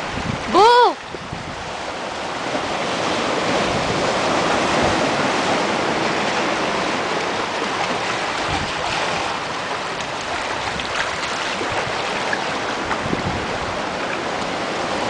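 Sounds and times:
wind on microphone: 0:00.0 - 0:15.0
small waves washing over rocks: 0:01.3 - 0:15.0.

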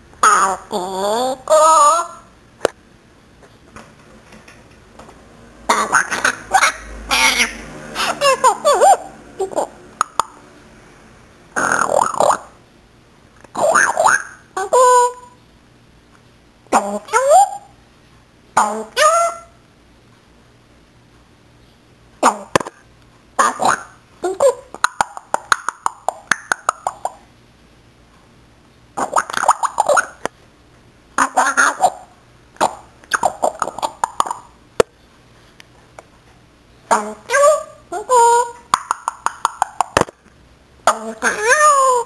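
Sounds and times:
parrot calls: 0:00.2 - 0:02.3, 0:05.7 - 0:10.4, 0:11.5 - 0:12.6, 0:13.5 - 0:15.4, 0:18.6 - 0:19.6, 0:23.4 - 0:27.3, 0:29.0 - 0:30.3, 0:31.2 - 0:34.6, 0:36.9 - 0:40.0, 0:40.8 - 0:42.0.

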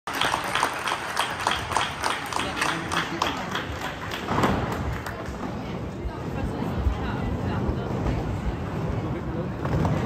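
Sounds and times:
audience clapping in rhythm: 0:00.1 - 0:05.4.

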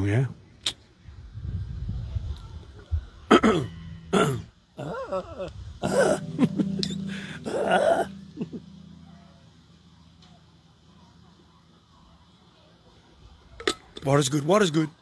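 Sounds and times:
man clearing his throat: 0:03.3 - 0:06.6
man coughing: 0:04.2 - 0:06.6.

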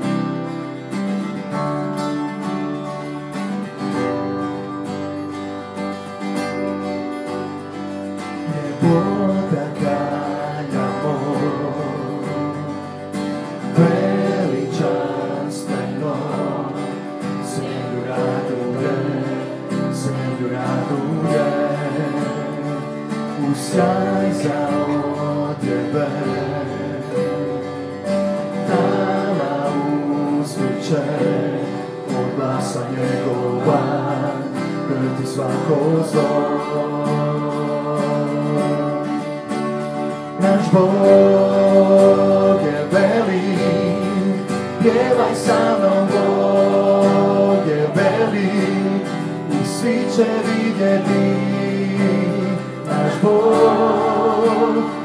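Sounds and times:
acoustic guitar: 0:00.0 - 0:55.0
keyboard: 0:00.0 - 0:55.0
people singing: 0:08.3 - 0:55.0.

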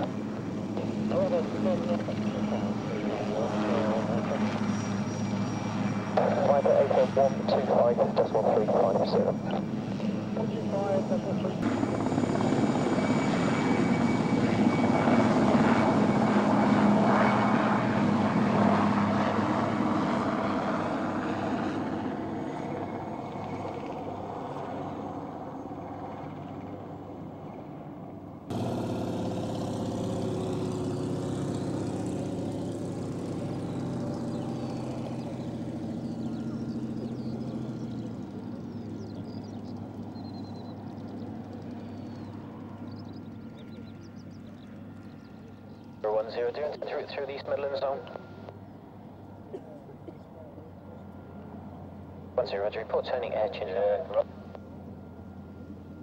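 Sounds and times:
aircraft engines: 0:00.0 - 0:56.0.

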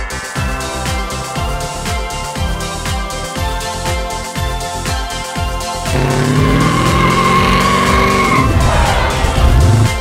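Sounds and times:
high steady squeal: 0:06.0 - 0:09.0.

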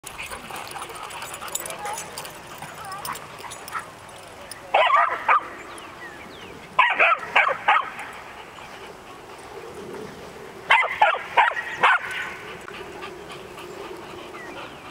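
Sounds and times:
dog barking and yipping: 0:04.8 - 0:05.5, 0:06.8 - 0:08.0, 0:10.7 - 0:12.3.

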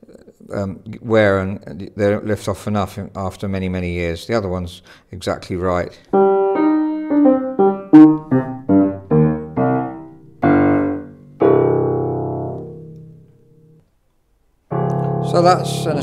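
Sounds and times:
upright piano playing: 0:06.1 - 0:13.8, 0:14.7 - 0:16.0.

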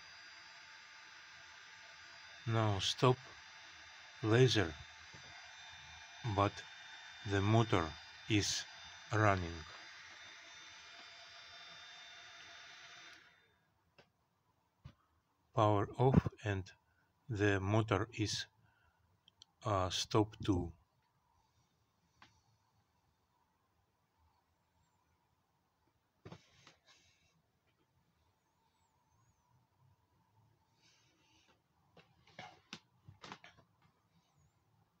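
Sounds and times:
spindle motor hiss and whine: 0:00.0 - 0:13.5
person speaking: 0:02.5 - 0:03.2, 0:04.2 - 0:04.8, 0:06.3 - 0:06.6, 0:07.3 - 0:09.7, 0:15.6 - 0:16.7, 0:17.3 - 0:18.5, 0:19.5 - 0:20.8.

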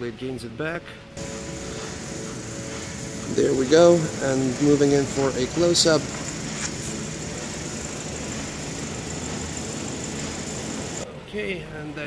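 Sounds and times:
low mechanical hum and hiss: 0:00.0 - 0:12.0.

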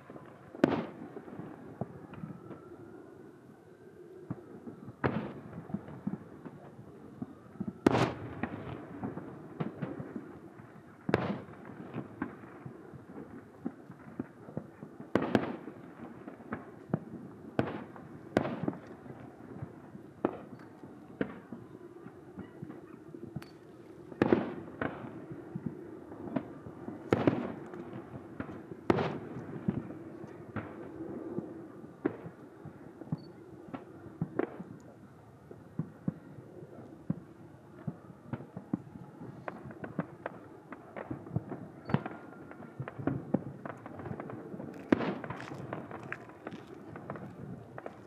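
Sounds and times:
fireworks bursting: 0:00.0 - 0:02.7, 0:04.3 - 0:23.5, 0:24.1 - 0:48.0
crackling pops: 0:37.8 - 0:48.0.

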